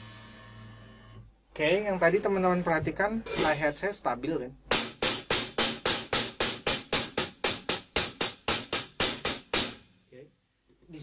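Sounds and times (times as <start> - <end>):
drumstick striking hi-hat: 3.2 - 3.8, 4.7 - 10.0.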